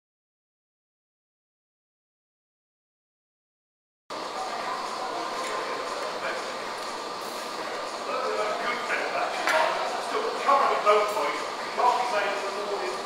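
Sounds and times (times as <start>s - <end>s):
murmur of distant voices: 4.1s - 13.0s.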